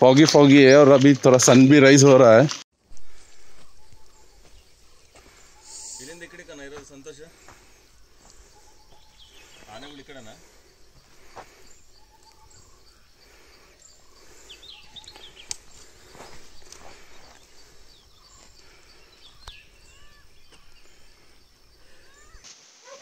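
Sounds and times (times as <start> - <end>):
bird chirps and calls: 3.5 - 6.8, 11.4 - 22.4.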